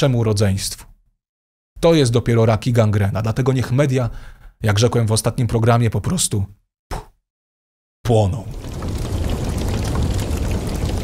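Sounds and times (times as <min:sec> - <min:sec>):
fire crackling: 0:08.5 - 0:11.0
low fire rumble: 0:08.5 - 0:11.0.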